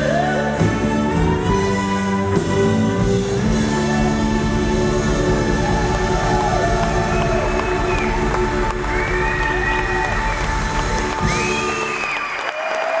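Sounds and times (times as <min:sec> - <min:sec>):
live band chord: 0:00.0 - 0:11.8
audience cheering: 0:04.0 - 0:13.0.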